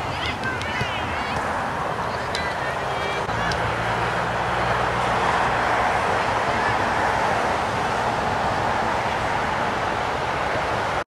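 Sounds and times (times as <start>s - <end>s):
faint distant shouts: 0.0s - 5.4s
rushing background noise: 0.0s - 11.0s
vehicle engine humming: 0.0s - 11.0s.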